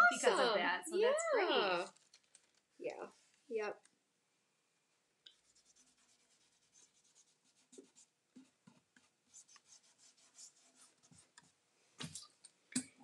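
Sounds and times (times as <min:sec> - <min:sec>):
faint scratching and rubbing: 0:01.7 - 0:03.6, 0:05.3 - 0:12.2.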